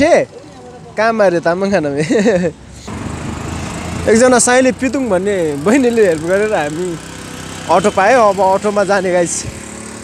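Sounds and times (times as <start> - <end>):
vehicle engine running: 2.9 - 10.0.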